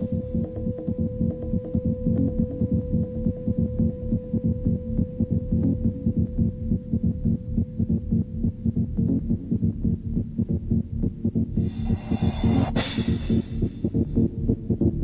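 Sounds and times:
pulsing kick drum and bass: 0:00.0 - 0:15.0.

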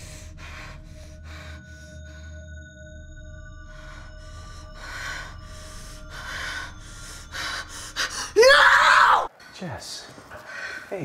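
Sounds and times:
faint film score drone: 0:00.0 - 0:10.0
woman screaming: 0:08.4 - 0:09.3.

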